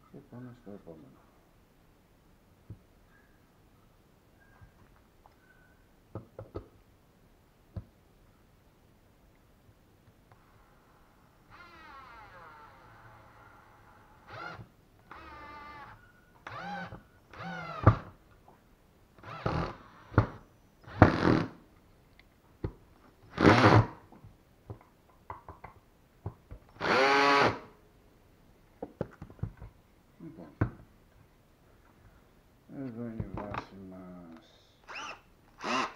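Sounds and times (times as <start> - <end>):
cordless drill driving screws: 11.5 - 18.1, 19.2 - 21.6, 23.3 - 24.0, 26.8 - 27.7, 34.8 - 35.9.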